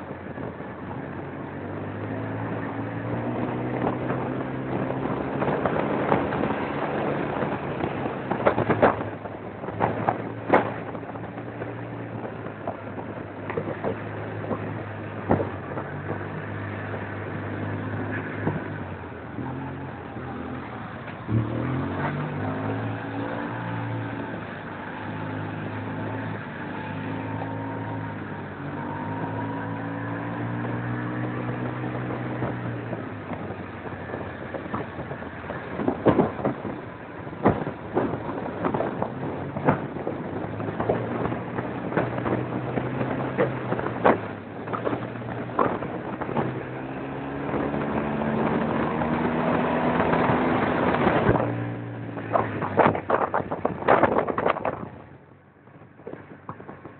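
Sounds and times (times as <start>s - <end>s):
vehicle engine running: 0.0s - 56.9s
wind noise on microphone: 0.0s - 56.9s.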